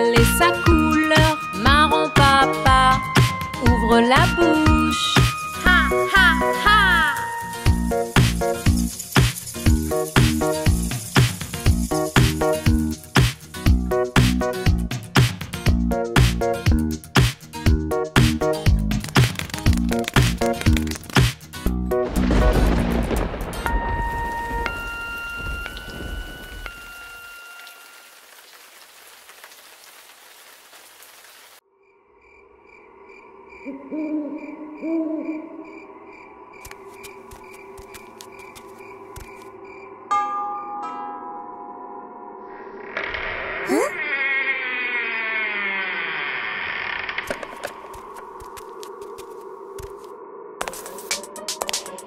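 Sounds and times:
cartoon song backing music: 0:00.0 - 0:11.0, 0:50.8 - 0:52.0
thunderclap: 0:22.0 - 0:26.7
steady rain: 0:22.1 - 0:31.6
high chime notes: 0:23.7 - 0:28.1
buzzing drone falling in pitch: 0:42.3 - 0:47.3.

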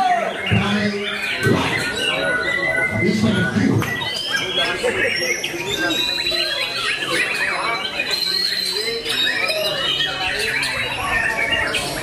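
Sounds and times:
people chattering: 0:00.0 - 0:12.0
bird singing whistles and chips: 0:03.8 - 0:12.0.

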